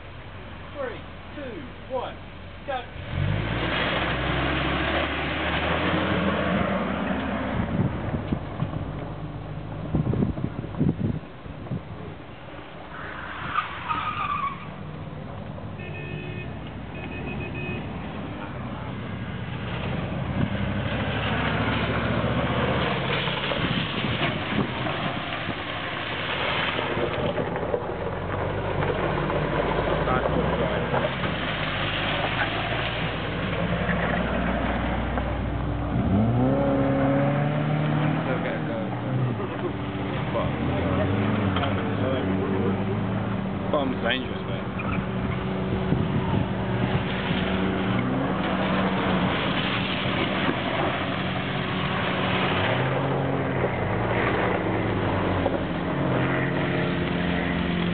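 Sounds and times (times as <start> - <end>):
car engine revving: 2.7 - 9.0, 16.5 - 57.9
tyres scrabbling on gravel: 19.5 - 36.5, 43.7 - 57.9.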